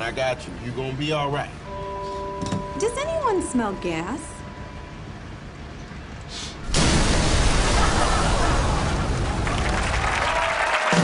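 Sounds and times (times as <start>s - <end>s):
loud explosion: 6.6s - 10.3s
audience applause and cheering: 7.6s - 11.0s.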